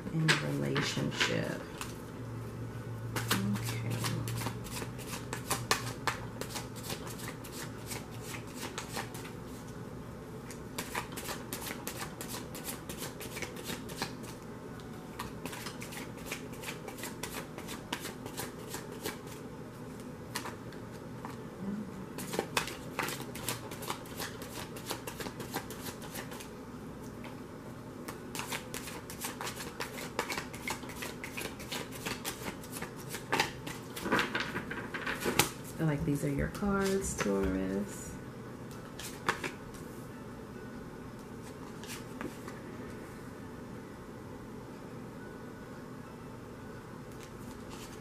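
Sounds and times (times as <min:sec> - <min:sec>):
cards being shuffled: 0:03.2 - 0:09.3, 0:10.5 - 0:14.4, 0:15.2 - 0:19.4, 0:22.2 - 0:26.5, 0:28.1 - 0:35.8, 0:38.7 - 0:39.8, 0:41.4 - 0:42.6, 0:47.1 - 0:48.0.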